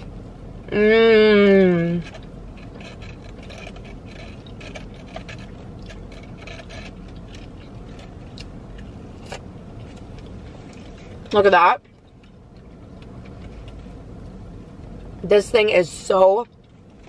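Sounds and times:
car cabin hum: 0.0s - 17.0s
person chewing food: 2.0s - 11.3s.

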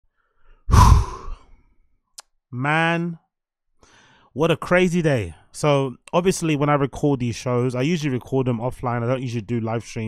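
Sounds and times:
man sighing heavily: 0.7s - 1.5s.

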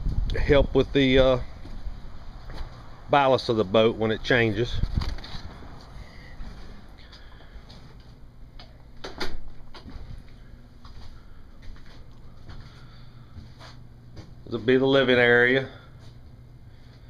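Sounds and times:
footsteps: 1.6s - 2.9s, 9.4s - 14.8s.

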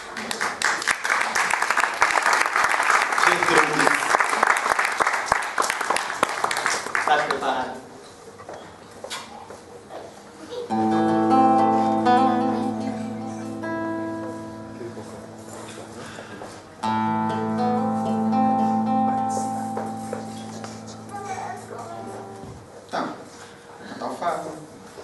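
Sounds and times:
guitar picked notes: 10.7s - 22.8s
guitar strummed chords: 10.7s - 22.8s.

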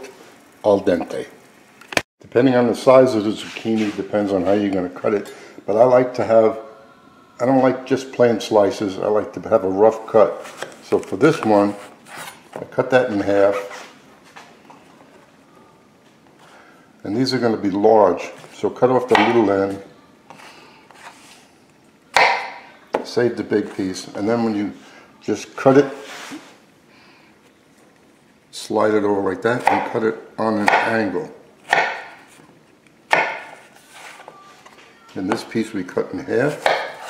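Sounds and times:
quiet rubbing: 25.9s - 26.7s
knife chopping on cutting board: 30.6s - 31.0s, 31.7s - 32.3s, 33.1s - 33.6s, 36.5s - 37.0s.

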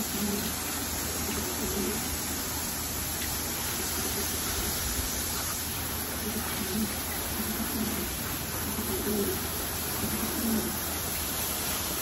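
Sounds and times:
water spraying from a hose: 0.0s - 12.0s.

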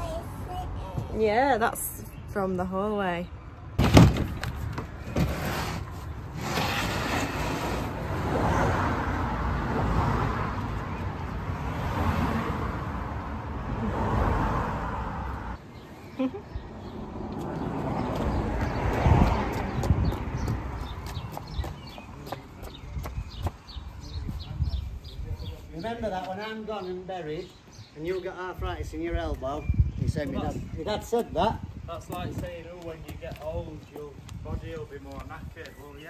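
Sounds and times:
cars passing on a road: 0.0s - 24.2s.

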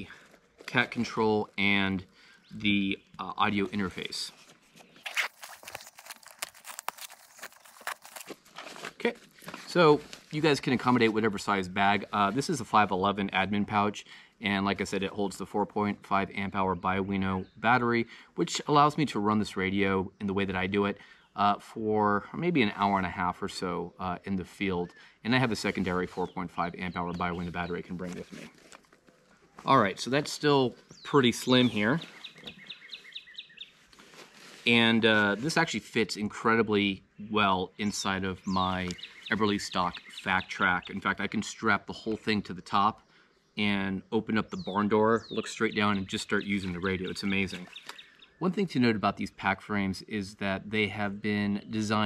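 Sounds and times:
fabric and strap rustling: 3.7s - 10.4s, 27.8s - 31.0s, 32.0s - 35.6s
bird chirping: 22.7s - 33.9s, 36.9s - 49.3s.

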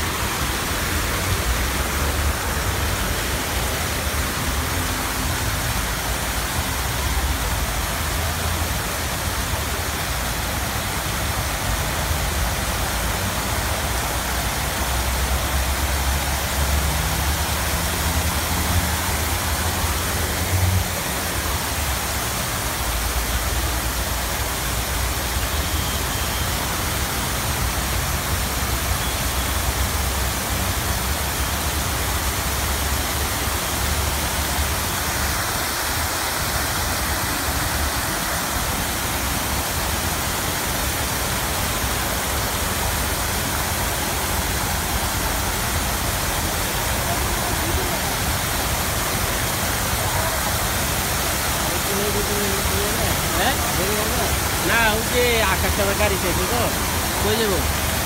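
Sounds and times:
fountain water splashing: 0.0s - 58.0s.

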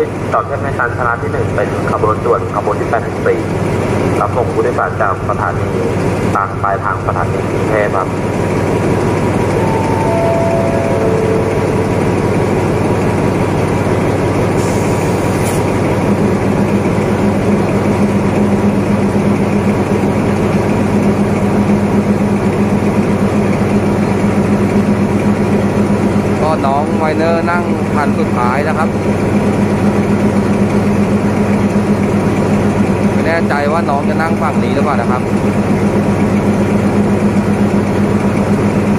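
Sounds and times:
diesel locomotive idling: 0.0s - 38.9s
descending chime: 9.4s - 13.6s.

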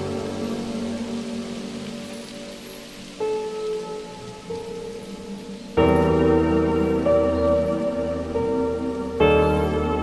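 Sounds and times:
rain hiss: 0.0s - 10.0s
soft slow piano music: 0.0s - 10.0s.

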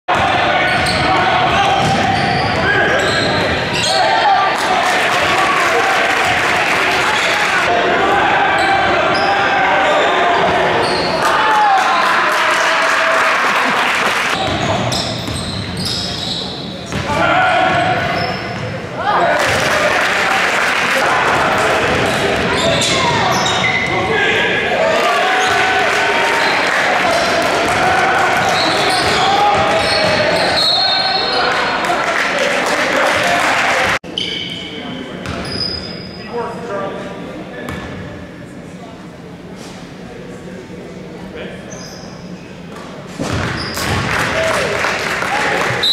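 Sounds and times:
sneaker squeaks: 0.6s - 4.2s, 10.8s - 11.2s, 14.4s - 17.1s, 17.7s - 18.8s, 22.4s - 24.0s, 28.4s - 31.6s, 34.1s - 36.4s, 41.7s - 44.0s.

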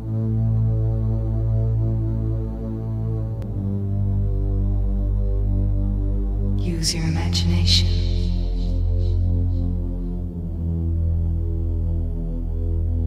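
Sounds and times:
low synthesizer drone: 0.0s - 13.0s.

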